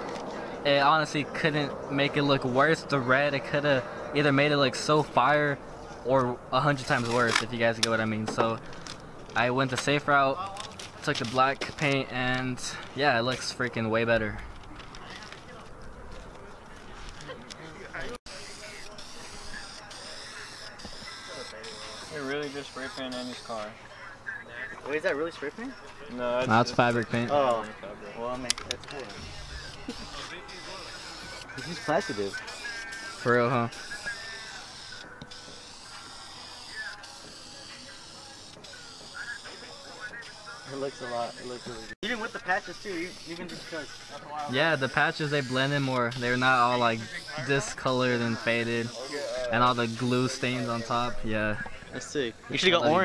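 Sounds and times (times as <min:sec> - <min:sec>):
spray paint can hissing: 0:29.1 - 0:38.4, 0:42.8 - 0:44.2, 0:44.8 - 0:46.7
aerosol spray paint hissing: 0:42.9 - 0:43.9.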